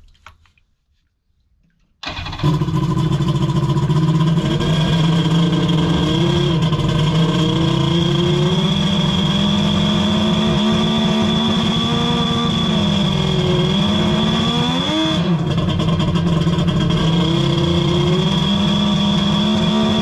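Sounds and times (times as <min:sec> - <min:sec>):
jet ski engine idling: 0:02.0 - 0:07.9, 0:15.4 - 0:17.2.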